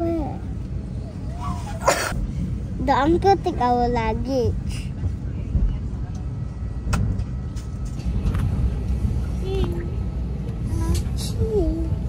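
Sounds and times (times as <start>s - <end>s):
low rumble inside airliner cabin: 0.0s - 12.0s.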